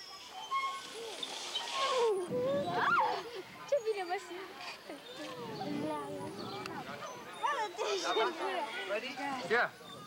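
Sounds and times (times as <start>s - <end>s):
girls calling out and squealing: 1.8s - 6.4s, 7.0s - 8.8s.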